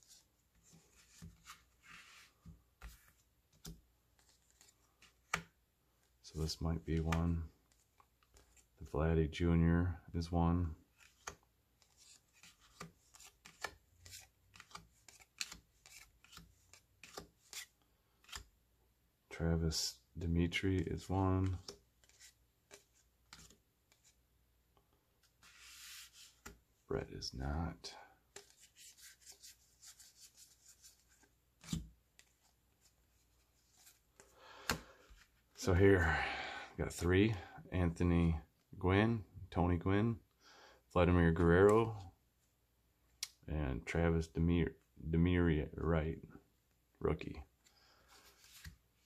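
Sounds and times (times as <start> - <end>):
cards flicking and rubbing: 0.0 - 5.6, 10.8 - 18.6, 21.4 - 24.2, 25.2 - 26.7, 28.2 - 35.6, 48.1 - 49.0
cards sliding off a stack: 25.2 - 26.6, 28.3 - 32.5, 33.6 - 35.3, 47.6 - 48.9.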